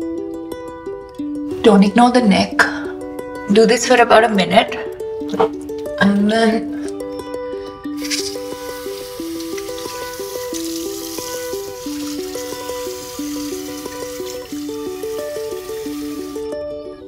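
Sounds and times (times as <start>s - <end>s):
background music melody: 0.0s - 17.0s
tap running into basin: 8.0s - 16.4s
water splashing: 8.0s - 16.4s.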